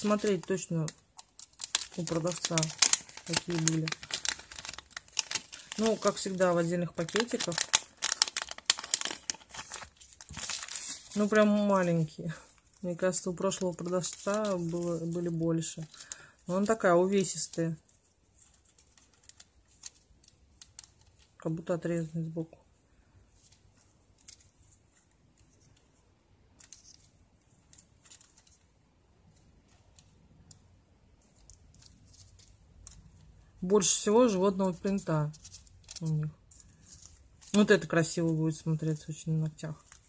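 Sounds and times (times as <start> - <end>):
plastic bag crinkling: 0.0 - 21.5, 31.3 - 38.7.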